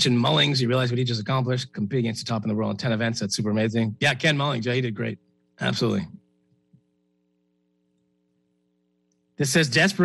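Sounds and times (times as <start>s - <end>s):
person speaking: 0.0s - 6.2s
faint electrical hum: 0.0s - 10.0s.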